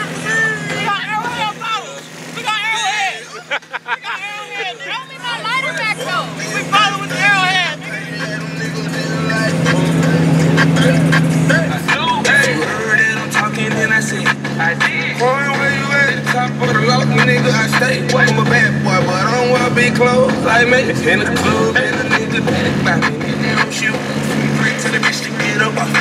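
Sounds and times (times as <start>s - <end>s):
music: 0.0s - 2.3s, 4.9s - 26.0s
boat engine running: 0.0s - 26.0s
voices: 0.0s - 26.0s.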